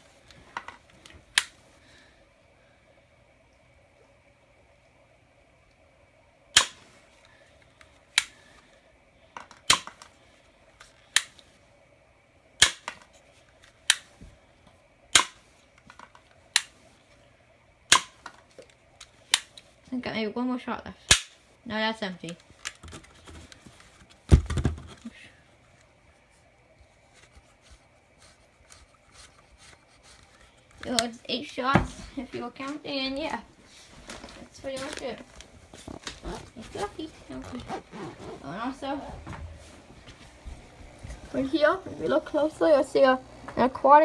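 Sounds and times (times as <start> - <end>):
toy gun shots snapping: 6.6 - 6.8, 9.6 - 10.1, 12.6 - 13.0, 15.1 - 15.4, 16.6 - 16.8, 17.9 - 18.3, 19.3 - 19.6, 21.1 - 21.4.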